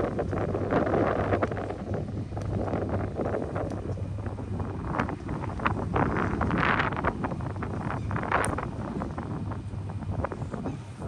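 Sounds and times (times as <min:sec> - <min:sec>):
steady low hum: 0:00.0 - 0:11.0
wind buffeting microphone: 0:00.0 - 0:11.0.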